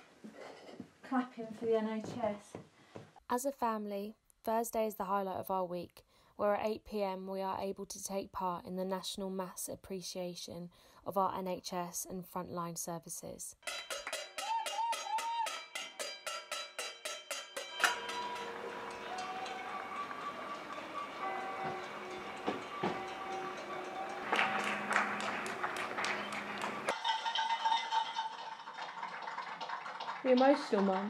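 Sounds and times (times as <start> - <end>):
hands clapping: 13.7 - 15.6, 17.6 - 31.0
pan being banged: 13.7 - 28.7.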